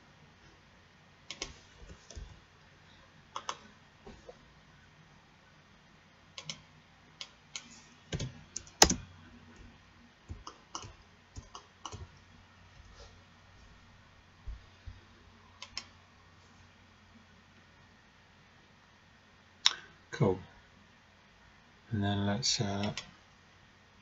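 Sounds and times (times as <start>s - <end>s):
keyboard and mouse clicks: 3.4s - 3.6s, 6.4s - 6.6s, 7.2s - 9.7s, 10.3s - 12.1s, 15.6s - 15.9s.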